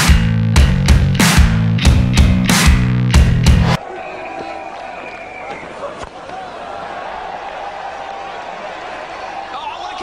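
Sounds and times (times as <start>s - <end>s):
stadium crowd noise: 3.7s - 10.0s.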